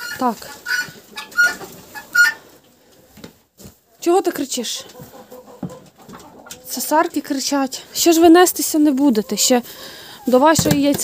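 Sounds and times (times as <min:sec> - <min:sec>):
hens squawking loudly: 0:00.0 - 0:02.5.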